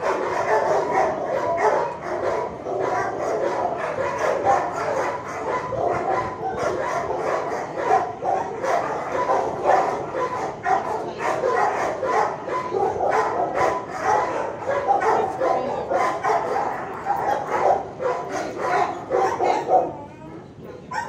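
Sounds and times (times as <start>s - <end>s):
dogs barking and yipping: 0.0s - 21.0s.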